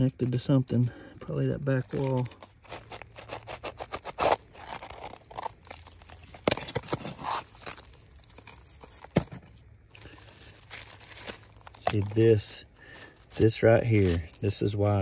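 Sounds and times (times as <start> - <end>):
fingers scraping clay and rock: 1.8 - 5.5.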